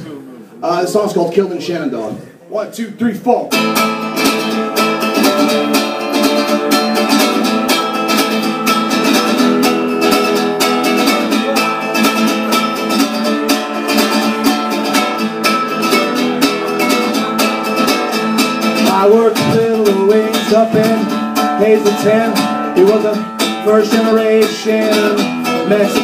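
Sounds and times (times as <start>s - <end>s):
acoustic guitar strummed quickly: 3.5s - 26.0s.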